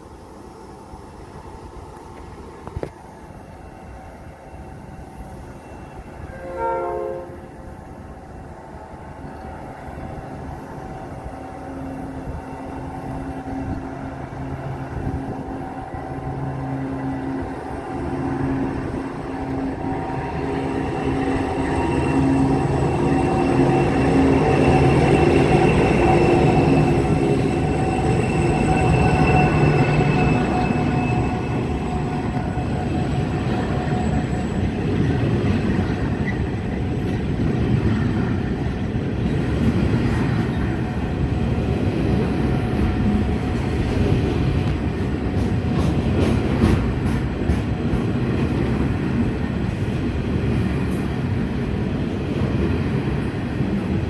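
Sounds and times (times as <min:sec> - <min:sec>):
diesel locomotive engine hum: 0:00.0 - 0:54.0
train horn blast: 0:05.7 - 0:07.7
wagons rumbling on track: 0:09.0 - 0:54.0.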